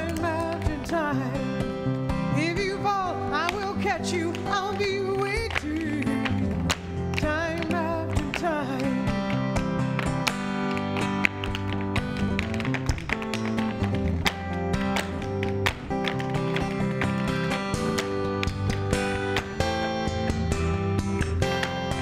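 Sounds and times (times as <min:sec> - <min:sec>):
instrumental music with guitar: 0:00.0 - 0:22.0
tap shoes clicking on stage: 0:01.9 - 0:22.0.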